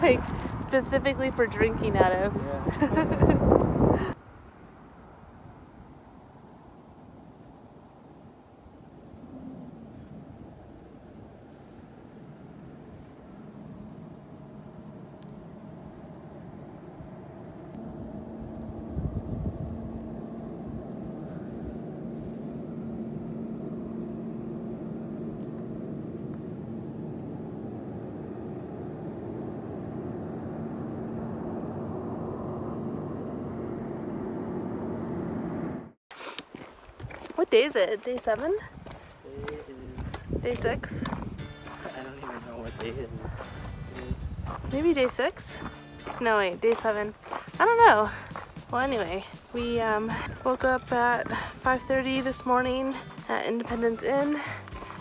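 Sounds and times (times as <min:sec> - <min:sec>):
cricket chirping: 0:04.1 - 0:35.9.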